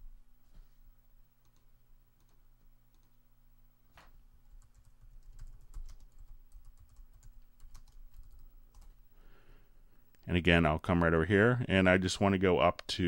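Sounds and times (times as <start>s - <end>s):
computer keyboard typing: 1.4s - 3.2s, 4.5s - 9.0s.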